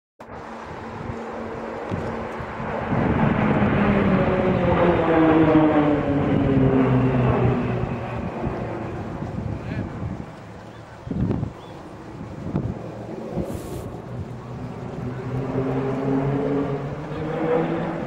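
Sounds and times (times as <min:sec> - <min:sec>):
propeller aircraft flying past: 0:00.2 - 0:18.0.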